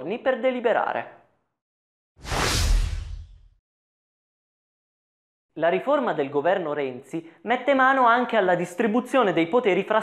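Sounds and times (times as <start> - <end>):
whoosh with deep boom: 2.2 - 3.6.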